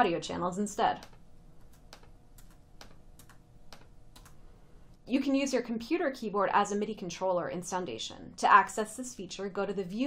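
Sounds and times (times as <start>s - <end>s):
faint steady hum: 0.0s - 10.0s
computer keys clicking: 1.0s - 4.4s.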